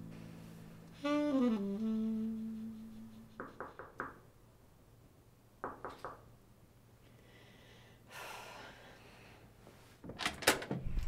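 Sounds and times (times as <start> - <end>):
knuckles knocking on door: 3.4 - 4.2, 5.6 - 6.2.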